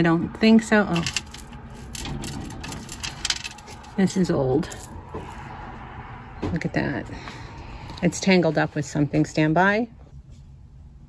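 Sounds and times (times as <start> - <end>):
jewelry clinking on glass shelf: 0.9 - 5.4.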